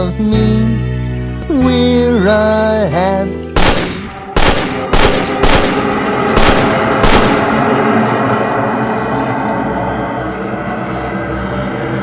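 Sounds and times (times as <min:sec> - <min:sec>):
gunshots with echoing tail: 0:03.6 - 0:07.8.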